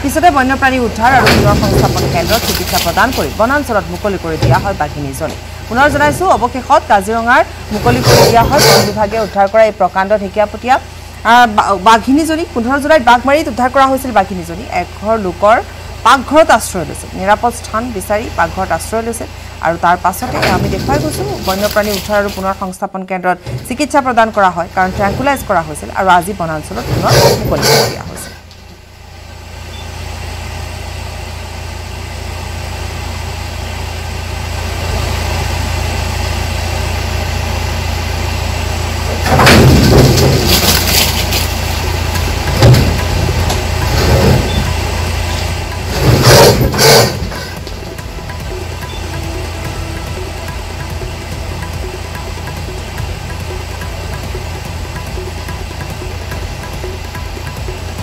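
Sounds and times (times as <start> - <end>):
vehicle engine idling: 28.4 - 58.0
loud bursts of noise: 33.9 - 57.9.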